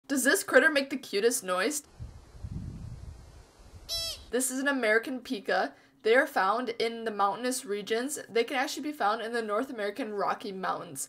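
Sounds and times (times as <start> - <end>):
pika high-pitched call: 3.9 - 4.4.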